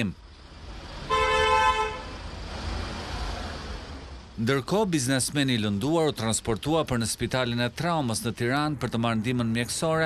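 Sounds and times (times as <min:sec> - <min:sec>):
low rumble of street noise: 0:00.0 - 0:10.0
vehicle horn honk: 0:01.1 - 0:02.2.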